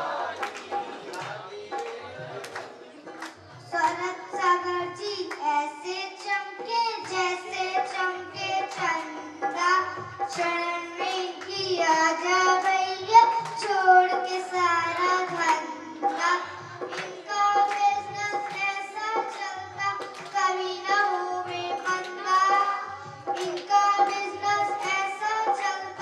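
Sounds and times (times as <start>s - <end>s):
girl singing into a microphone: 3.6s - 26.0s.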